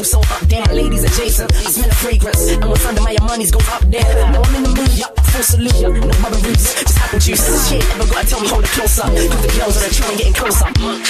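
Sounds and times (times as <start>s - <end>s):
house music with heavy sub-bass: 0.0s - 11.0s
vocal over dance beat: 0.0s - 11.0s.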